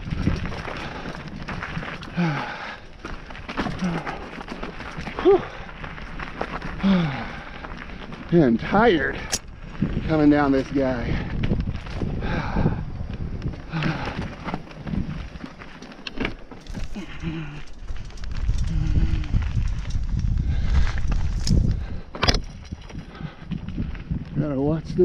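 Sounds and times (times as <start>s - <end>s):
wind on microphone: 0.0s - 2.4s, 9.1s - 15.4s, 16.7s - 25.0s
bike rattling over rocks: 0.0s - 25.0s
tyres rumbling on dirt: 0.0s - 25.0s.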